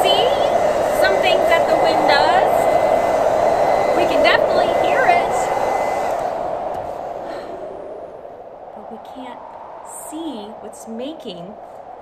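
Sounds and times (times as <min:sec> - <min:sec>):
hair dryer blowing: 0:00.0 - 0:07.9.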